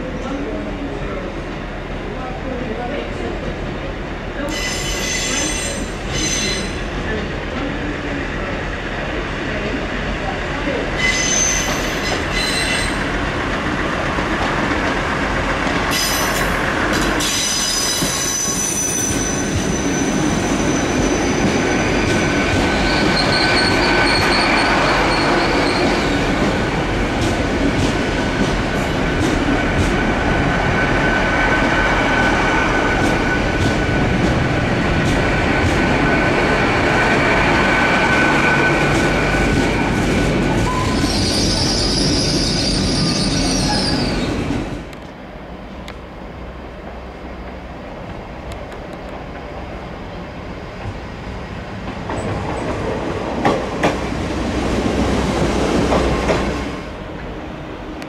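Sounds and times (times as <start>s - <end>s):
rumble of passing train carriages: 0.0s - 58.0s
train wheels squealing on track: 4.5s - 7.0s, 10.9s - 13.1s, 15.9s - 26.5s, 40.6s - 44.5s.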